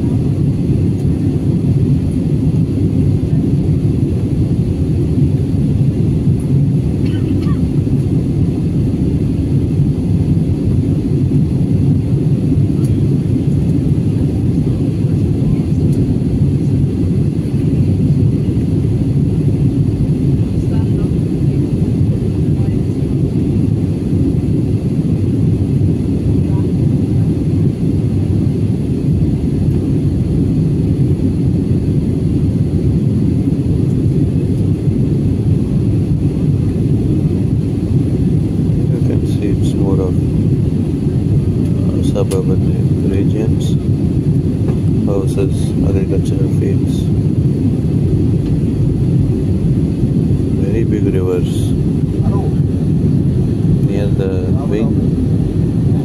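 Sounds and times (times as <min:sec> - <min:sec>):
jet airliner cabin noise: 0:00.0 - 0:56.0.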